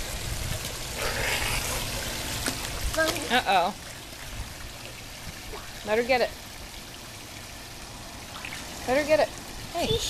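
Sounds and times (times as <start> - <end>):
pool water lapping: 0.0 - 10.0.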